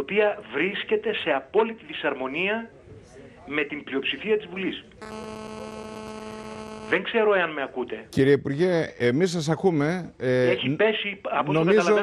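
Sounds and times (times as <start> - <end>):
phone-in call voice: 5.0 - 7.0
telephone line electrical buzz: 5.0 - 7.0.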